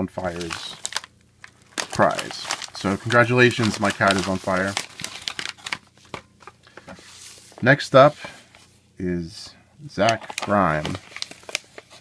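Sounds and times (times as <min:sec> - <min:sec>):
paper mailer crinkling: 0:00.0 - 0:08.1, 0:10.0 - 0:12.0.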